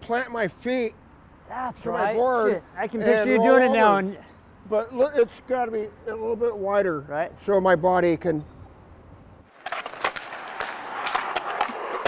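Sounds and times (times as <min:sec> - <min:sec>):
skateboard wheels rolling on concrete: 0:09.4 - 0:12.0
skateboard clacks: 0:09.5 - 0:12.0.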